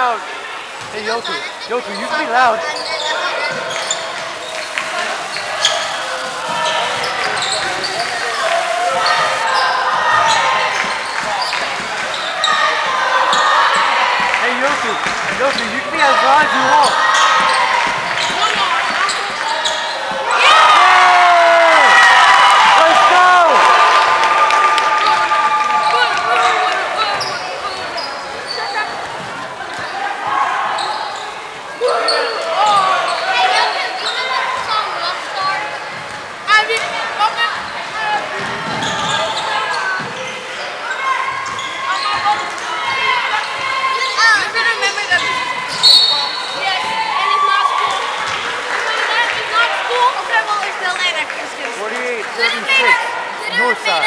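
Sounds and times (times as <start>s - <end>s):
spectators shouting and cheering: 0.0s - 54.0s
sneakers squeaking on hardwood: 0.8s - 20.5s, 25.8s - 34.8s, 37.4s - 47.2s.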